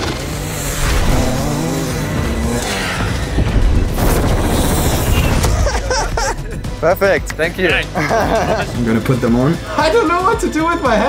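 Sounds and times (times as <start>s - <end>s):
dirt bike engine revving: 0.0s - 6.8s.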